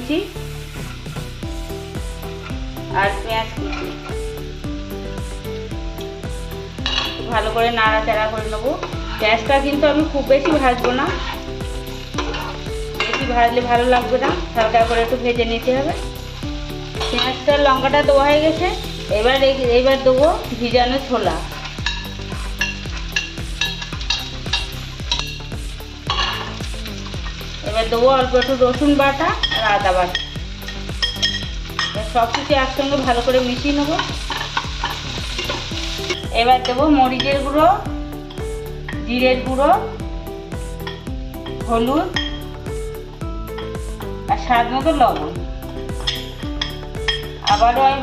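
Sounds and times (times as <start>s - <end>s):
background music with steady beat: 0.0s - 48.0s
vegetables sizzling in oil: 0.0s - 48.0s
spatula stirring: 10.4s - 13.3s, 21.2s - 27.6s, 28.3s - 36.8s.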